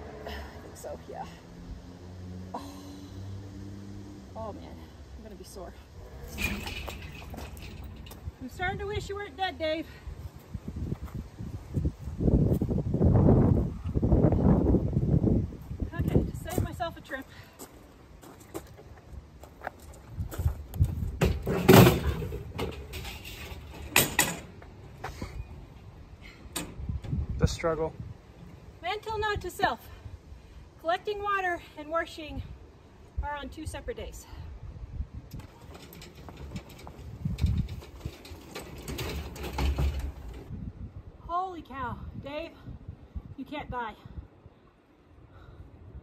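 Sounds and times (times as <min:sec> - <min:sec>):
wagon wheels rumbling: 0:04.4 - 0:11.3, 0:15.6 - 0:27.2, 0:35.3 - 0:40.5
load rattling and clattering: 0:06.3 - 0:08.8, 0:21.2 - 0:24.7, 0:35.3 - 0:40.5.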